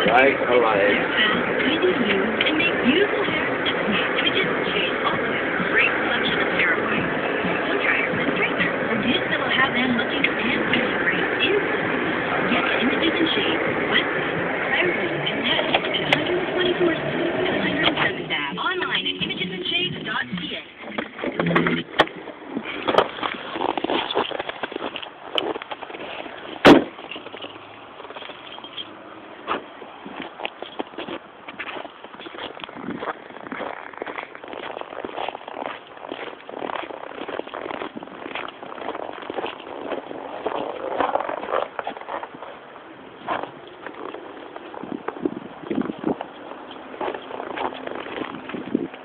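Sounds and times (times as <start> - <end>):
car road noise: 0.0 - 49.0
small clicks and crackles: 21.0 - 28.9.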